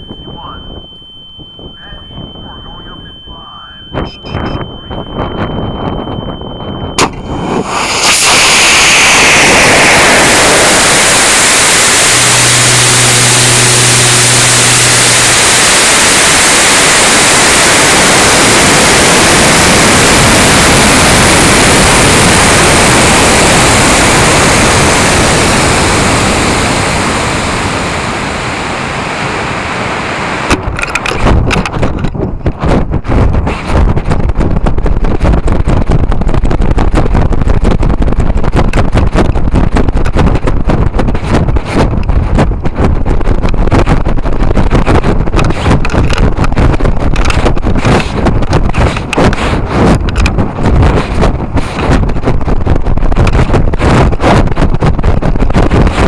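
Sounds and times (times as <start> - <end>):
wind buffeting microphone: 0.0 - 56.0
rocket motor roaring: 1.6 - 56.0.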